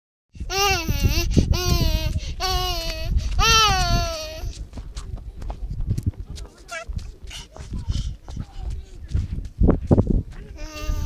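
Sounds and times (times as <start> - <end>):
wind rumble on microphone: 0.3 - 11.0
toddler vocalizing: 0.5 - 4.5, 10.6 - 11.0.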